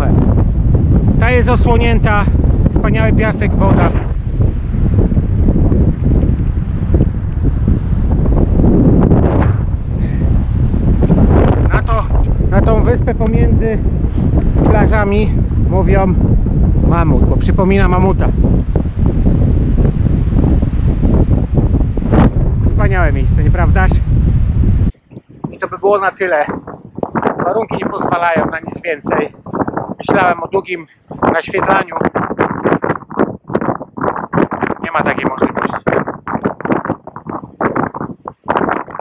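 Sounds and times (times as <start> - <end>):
gusting wind on microphone: 0.0 - 39.0.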